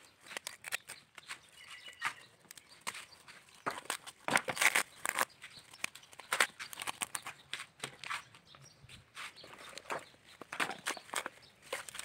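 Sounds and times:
coconut fibres tearing by hand: 0:00.0 - 0:01.4, 0:02.0 - 0:08.2.

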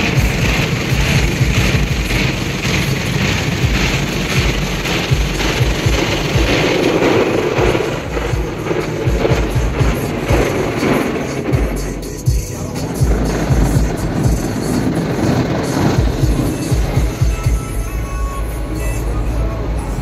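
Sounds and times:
low thumps: 0:00.0 - 0:17.8
water spray pounding on car: 0:00.0 - 0:18.0
music in car cabin: 0:00.0 - 0:20.0.

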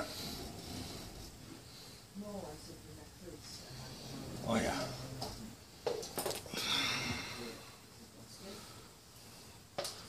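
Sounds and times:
person breathing out: 0:06.5 - 0:07.6.

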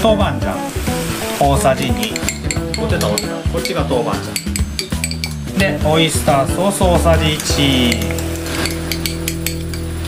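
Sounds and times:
metal spoon scraping glass dish: 0:07.8 - 0:09.8.

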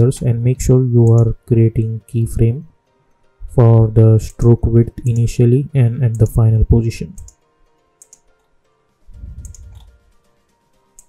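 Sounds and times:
faint background music: 0:00.0 - 0:11.0
computer mouse clicks: 0:07.2 - 0:07.4, 0:08.0 - 0:08.5, 0:09.1 - 0:10.0
low muffled rumble: 0:09.1 - 0:10.0.

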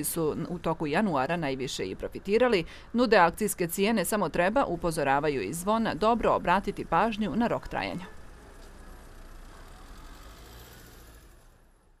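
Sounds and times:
cars passing: 0:03.8 - 0:12.0.

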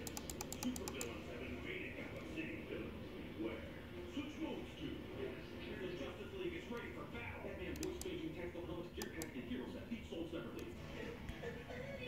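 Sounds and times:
laptop keyboard clicks: 0:00.0 - 0:01.1, 0:07.7 - 0:08.1
faint indistinct voices: 0:00.0 - 0:12.0.

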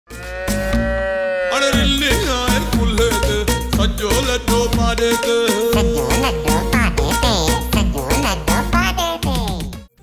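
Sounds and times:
buffalo calf mooing: 0:00.1 - 0:01.9
music with low beats: 0:01.8 - 0:09.9.

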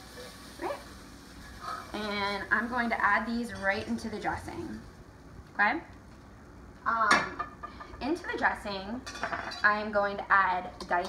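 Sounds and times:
faint steady hiss: 0:00.0 - 0:09.0.

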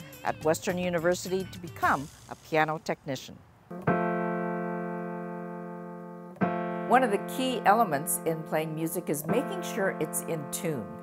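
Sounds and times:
piano note ringing: 0:03.7 - 0:11.0.

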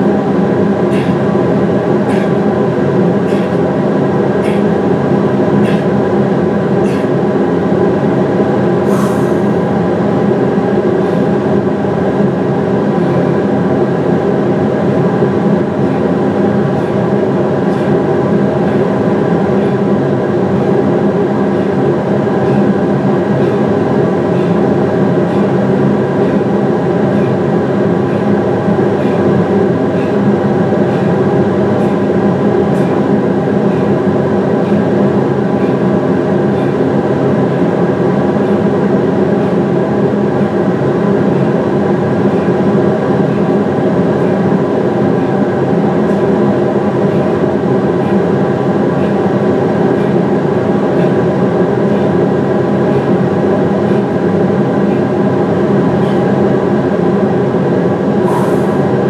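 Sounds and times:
industrial fans droning: 0:00.0 - 0:59.0.

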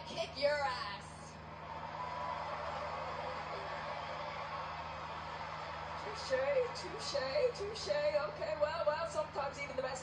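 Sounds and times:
arena crowd voices: 0:01.5 - 0:08.6.

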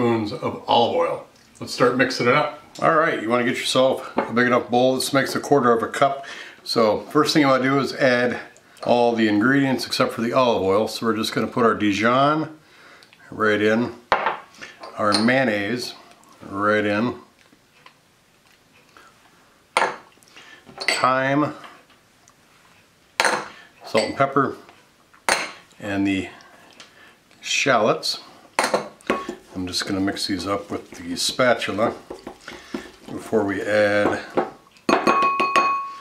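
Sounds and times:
spatula mixing in glass bowl: 0:29.1 - 0:33.6
spatula knocking on glass bowl: 0:34.0 - 0:35.9
glass ringing: 0:34.9 - 0:36.0.

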